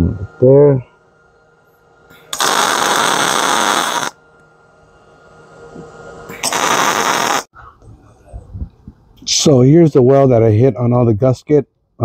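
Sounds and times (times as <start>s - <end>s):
welding arc crackling: 2.3s - 4.2s, 6.3s - 7.5s.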